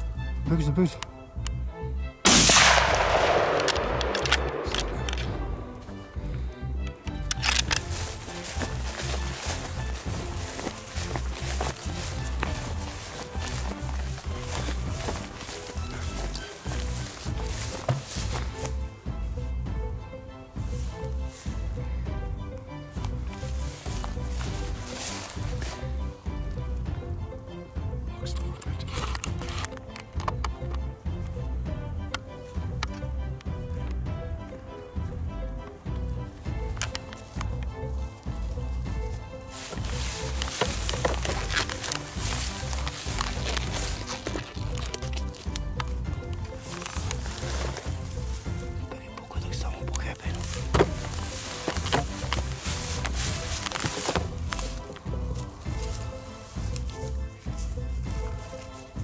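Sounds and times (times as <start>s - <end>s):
background music with steady beat: 0.0s - 59.0s.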